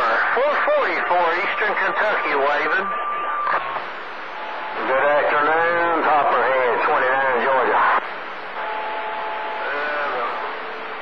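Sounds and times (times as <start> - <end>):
radio static hiss: 0.0 - 11.0
faint distorted voice: 9.6 - 10.6.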